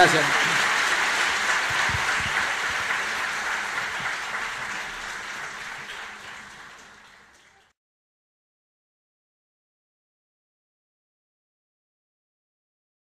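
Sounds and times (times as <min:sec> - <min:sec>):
audience applause: 0:00.0 - 0:07.7.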